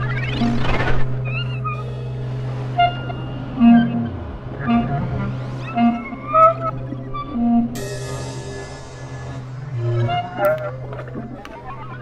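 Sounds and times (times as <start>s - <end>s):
high squeaky tones: 0.0s - 12.0s
low drone: 0.0s - 12.0s.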